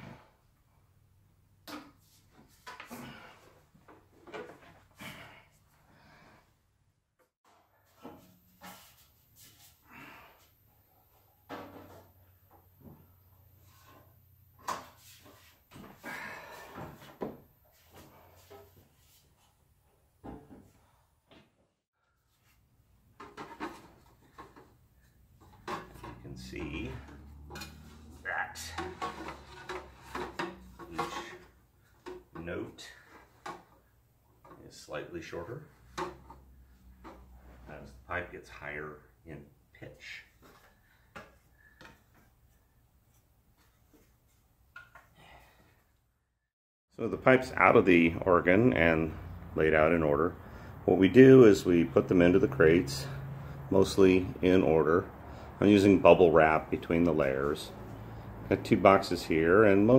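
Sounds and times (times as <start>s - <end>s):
metal pipes clattering against wood: 11.5s - 12.2s, 23.2s - 34.6s, 35.8s - 37.6s.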